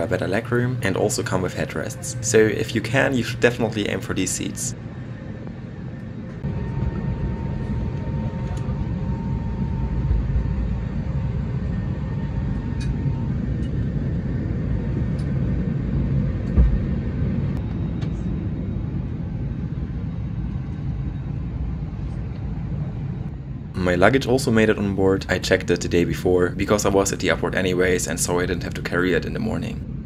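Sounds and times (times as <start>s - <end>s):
air-conditioning rumble: 0.0s - 30.0s
faint steady hum: 0.0s - 30.0s
low thump: 16.5s - 16.9s.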